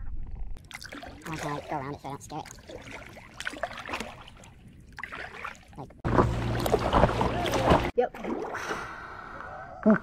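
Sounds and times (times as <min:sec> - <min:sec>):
paddle dipping and dripping water: 0:00.6 - 0:09.4
soft water splashes: 0:00.6 - 0:09.5.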